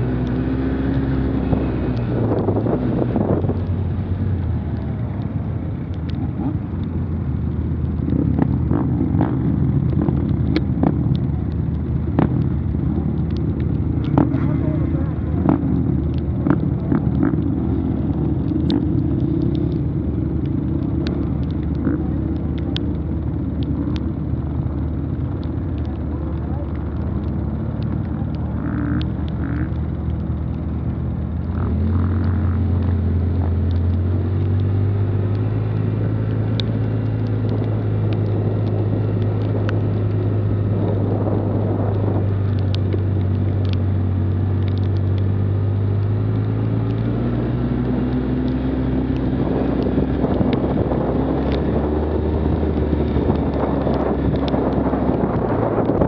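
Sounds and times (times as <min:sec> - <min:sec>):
atv engine running: 0:00.0 - 0:56.0.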